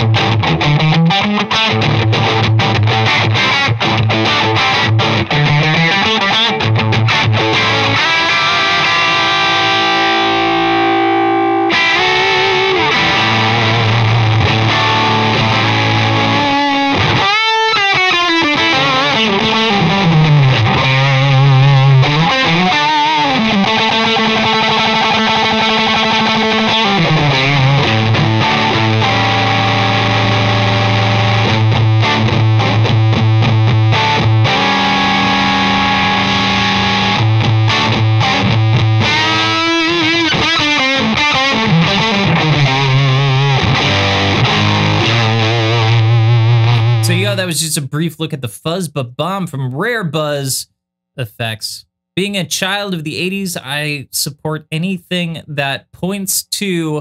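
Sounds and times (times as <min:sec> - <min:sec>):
fuzzed electric guitar riffs: 0:00.0 - 0:50.6.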